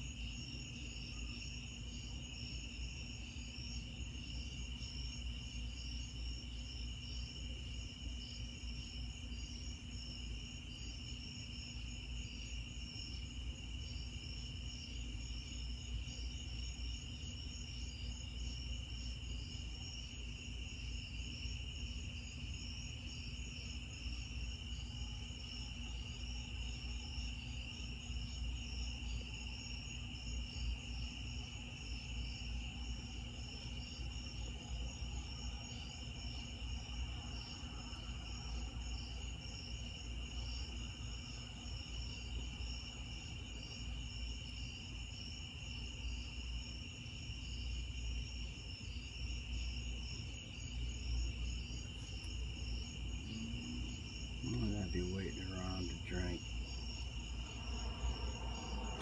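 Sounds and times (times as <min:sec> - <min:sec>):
crickets trilling: 0:00.0 - 0:59.0.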